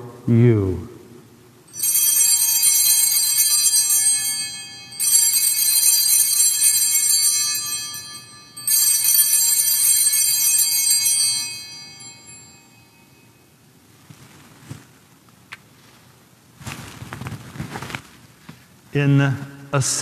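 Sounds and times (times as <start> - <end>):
altar bells ringing: 1.7 - 13.6.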